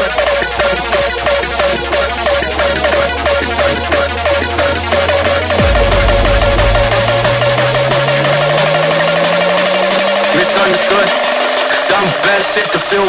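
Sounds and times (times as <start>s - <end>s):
fast repeating synth note: 5.6s - 10.7s
rising synth tone: 5.6s - 10.9s.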